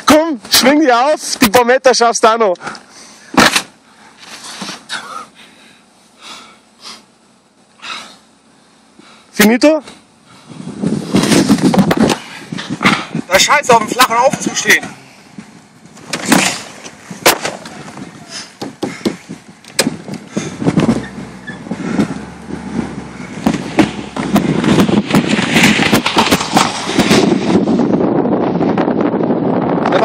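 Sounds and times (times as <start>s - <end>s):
car engine and tyre noise: 0.0s - 30.0s
sharp knocks: 18.6s - 20.1s, 23.4s - 27.4s.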